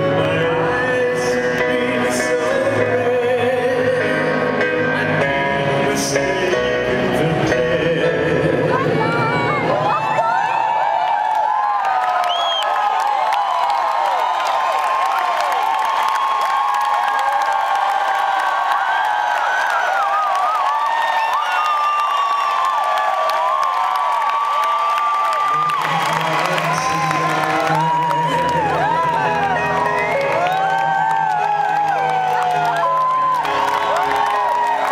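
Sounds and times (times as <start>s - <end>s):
crowd cheering and whooping: 8.7s - 34.9s.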